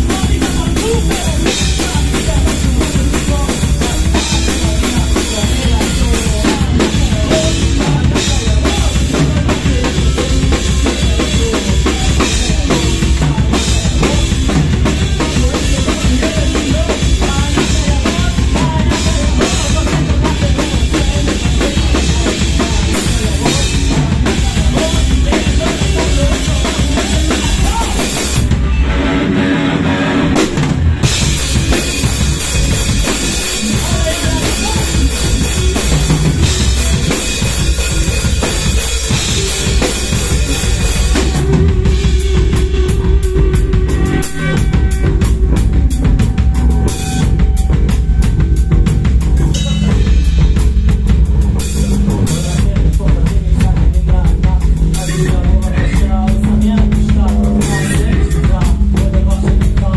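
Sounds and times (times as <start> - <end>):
fast cymbal beat: 0.0 - 28.6, 30.5 - 59.9
drum kit: 0.0 - 59.9
live rock band playing: 0.0 - 59.9.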